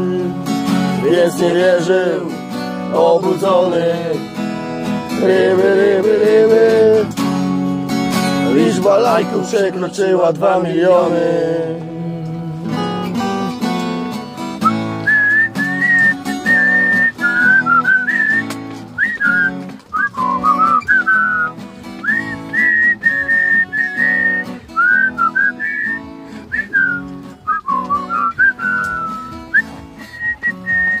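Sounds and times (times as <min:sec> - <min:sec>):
acoustic guitar strumming: 0:00.0 - 0:31.0
whistled melody: 0:14.5 - 0:31.0.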